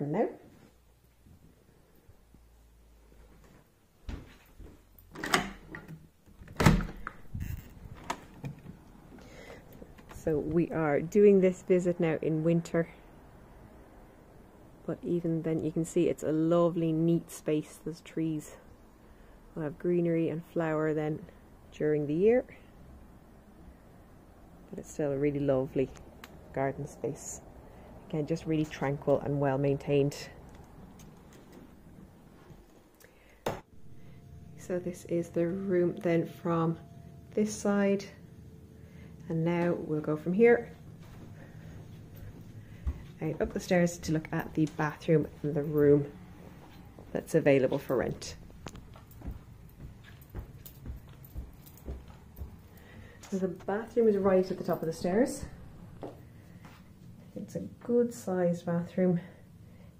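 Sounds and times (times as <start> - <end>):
faint low rumble and hiss: 0.0 - 59.9.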